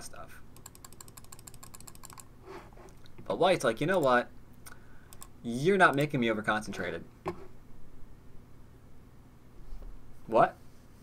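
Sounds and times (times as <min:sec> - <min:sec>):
rapid computer mouse clicking: 0:00.6 - 0:02.3, 0:03.9 - 0:04.2, 0:05.1 - 0:06.2.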